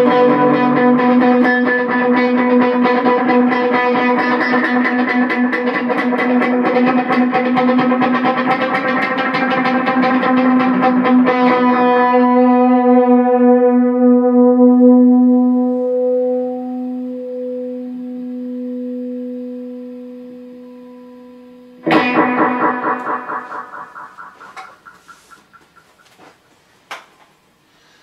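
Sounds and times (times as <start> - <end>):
electric guitar note ringing: 0.0 - 26.3
guitar strings hit with delay: 21.8 - 25.8.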